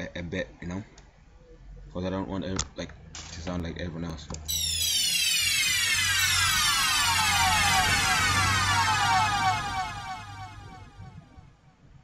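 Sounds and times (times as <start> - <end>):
electronic tones sliding down: 4.5 - 11.4.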